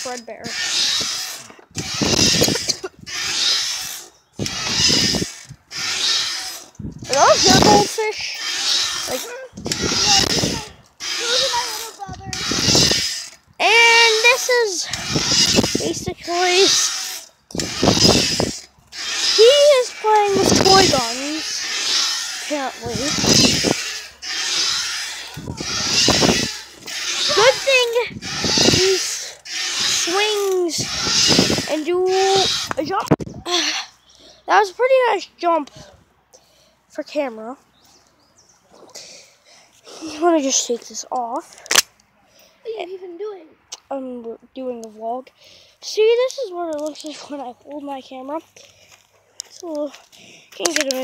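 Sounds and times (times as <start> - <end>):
wind buffeting microphone: 0.0 - 3.4, 4.4 - 6.1, 6.7 - 8.2, 8.9 - 16.8, 17.5 - 23.9, 24.7 - 33.5
swing rushing and rubbing: 0.0 - 34.6.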